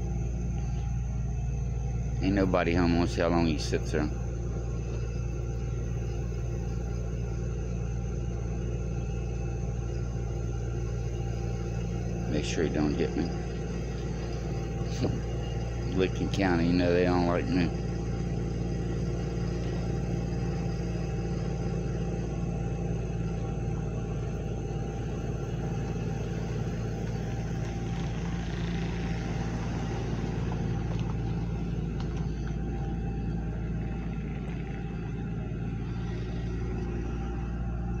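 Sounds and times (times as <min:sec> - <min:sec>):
vehicle engine running: 0:00.0 - 0:38.0.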